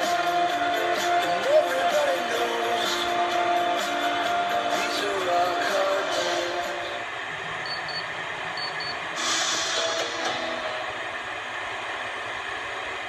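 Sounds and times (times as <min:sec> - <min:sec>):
static hiss: 0:00.0 - 0:13.0
short high beeps: 0:07.6 - 0:09.0.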